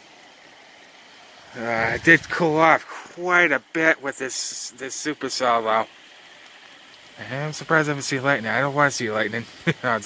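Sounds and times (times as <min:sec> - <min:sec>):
rain hissing: 0:00.0 - 0:10.0
man talking: 0:01.5 - 0:05.9, 0:07.2 - 0:10.0.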